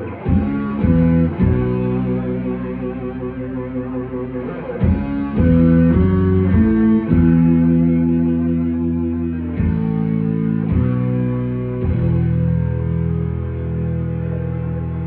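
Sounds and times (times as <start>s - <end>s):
electric guitar and bass chords: 0.0s - 15.0s.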